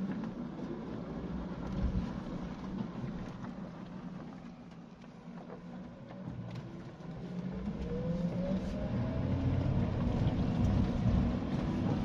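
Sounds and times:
car engine revving in cabin: 6.4s - 12.0s.

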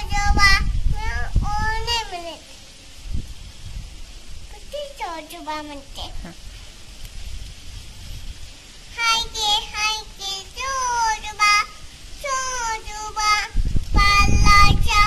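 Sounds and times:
small child singing: 0.0s - 2.5s, 4.5s - 6.2s, 8.9s - 15.0s.

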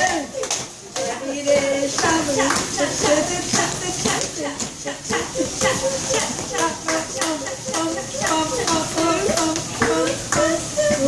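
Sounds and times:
sharp rhythmic taps: 0.0s - 11.0s
voices humming wordless tune: 0.0s - 11.0s.

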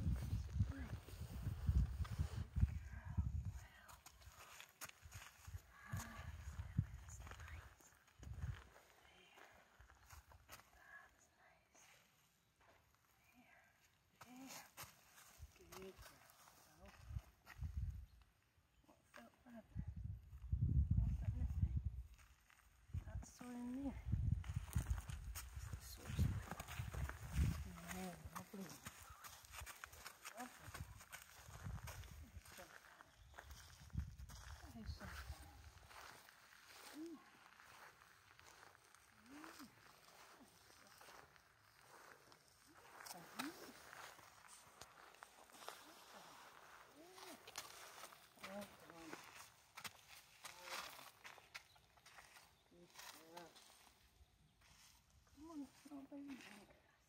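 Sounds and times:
soft low voice murmuring: 0.0s - 4.6s, 5.5s - 10.1s, 25.6s - 49.4s
boots crunching on gravel: 24.5s - 33.7s, 34.3s - 53.7s
horse hooves on gravel: 25.2s - 33.1s, 46.8s - 52.2s.

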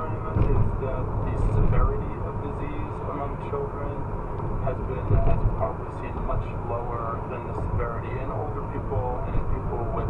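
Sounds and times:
news broadcast voice: 0.0s - 4.0s, 4.6s - 10.0s
car road and engine rumble: 0.0s - 10.0s.

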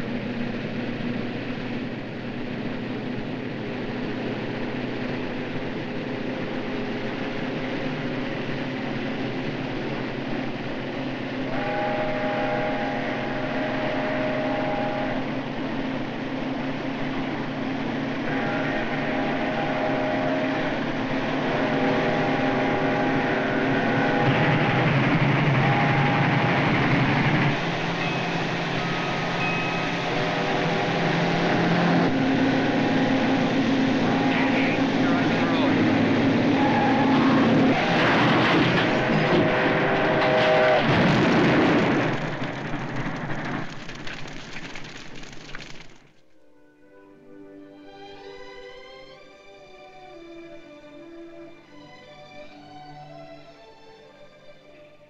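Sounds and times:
train rumbling: 0.0s - 46.5s
steam locomotive whistle blasts: 11.4s - 16.0s, 18.0s - 41.0s.

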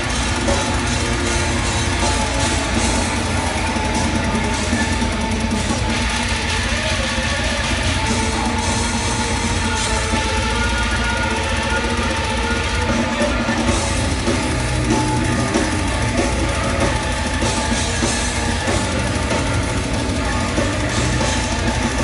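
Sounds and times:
drum kit with cymbals: 0.0s - 22.0s
electric guitar: 0.0s - 22.0s.

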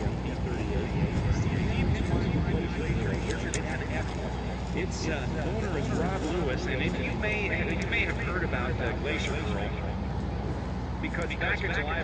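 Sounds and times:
propeller plane engines droning overhead: 0.0s - 12.0s
announcer over public address: 11.0s - 12.0s.

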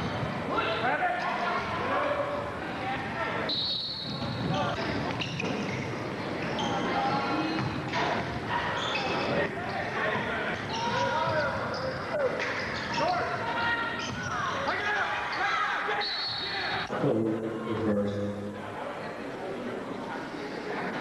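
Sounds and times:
echoing voices: 5.8s - 21.0s.

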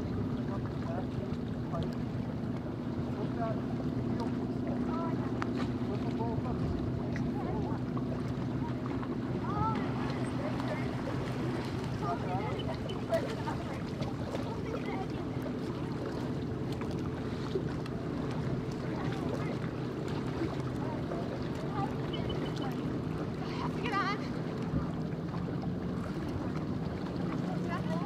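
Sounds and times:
motorboat engine idling: 0.0s - 28.0s
faint voices: 3.0s - 16.4s, 18.6s - 25.1s.

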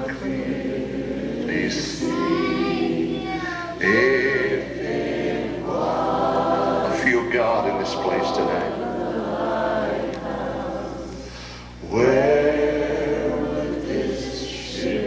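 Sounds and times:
choir singing gospel: 0.0s - 15.0s
steady low hum: 0.0s - 15.0s.

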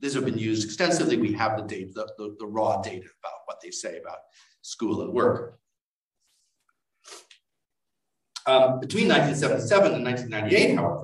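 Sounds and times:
quick breath or throat noise: 7.0s - 7.4s.

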